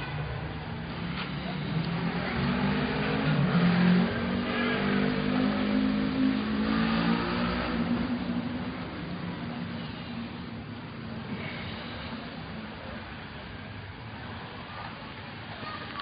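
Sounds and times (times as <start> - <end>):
vehicle engine revving: 0.8 - 13.1.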